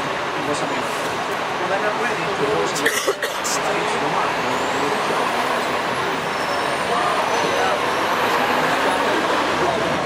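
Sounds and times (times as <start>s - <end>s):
city street traffic: 0.0s - 10.0s
indistinct voices: 0.0s - 10.0s.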